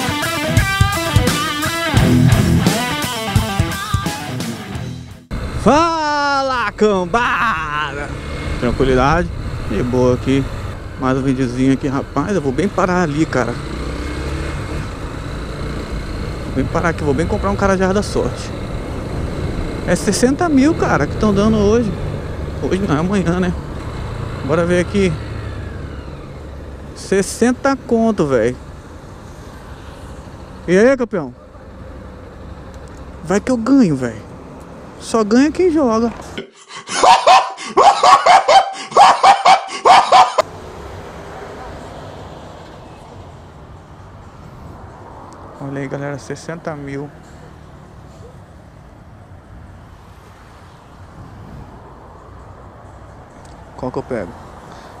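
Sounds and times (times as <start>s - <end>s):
road traffic rumble: 0.0s - 55.0s
motorcycle engine slowing: 5.3s - 30.8s.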